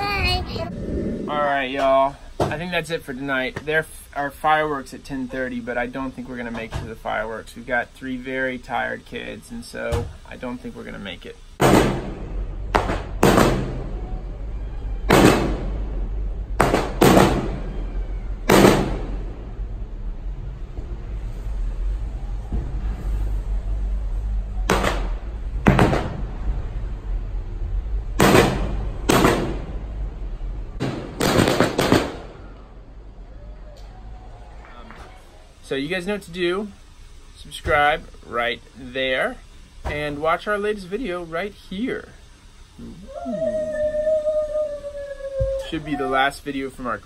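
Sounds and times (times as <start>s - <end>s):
steady low rumble: 0.0s - 6.5s, 7.1s - 34.7s
fireworks bursting with echoes: 11.6s - 14.1s, 15.1s - 19.4s, 28.2s - 29.9s, 30.8s - 32.8s.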